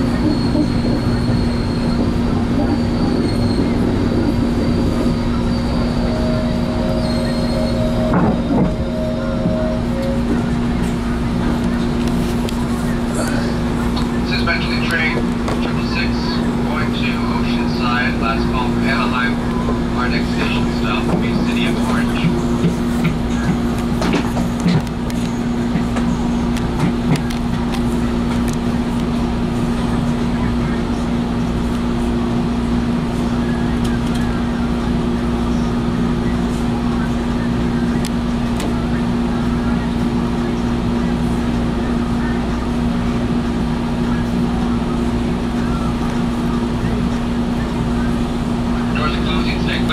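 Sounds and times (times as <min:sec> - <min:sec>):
train interior hum: 0:00.0 - 0:49.9.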